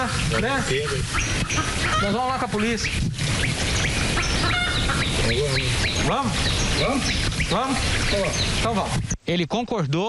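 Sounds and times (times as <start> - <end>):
bird squawking: 0.0 - 9.2
birds chirping: 0.0 - 10.0.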